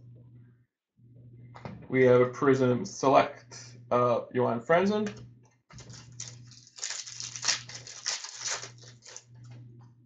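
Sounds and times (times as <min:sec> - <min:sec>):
steady low hum: 0:00.0 - 0:10.0
cards flicking and rustling: 0:05.7 - 0:09.3.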